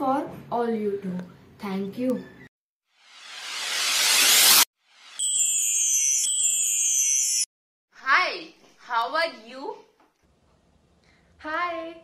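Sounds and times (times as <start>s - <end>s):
high-pitched electronic chime: 3.2s - 7.5s.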